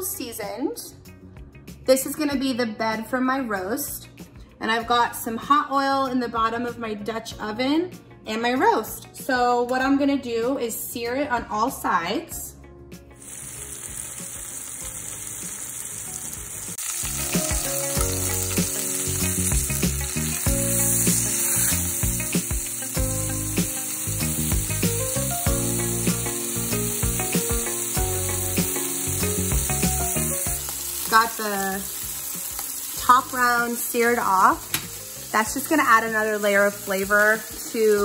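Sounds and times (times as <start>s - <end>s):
meat sizzling in hot oil: 13.2s - 38.0s.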